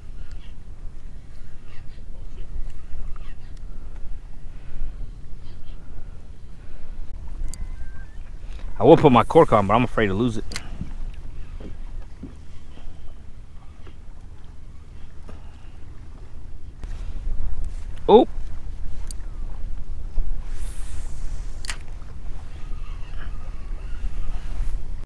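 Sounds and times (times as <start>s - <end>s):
wind buffeting microphone: 0.0s - 25.0s
brief hiss: 20.4s - 21.9s
sharp click: 21.6s - 21.9s.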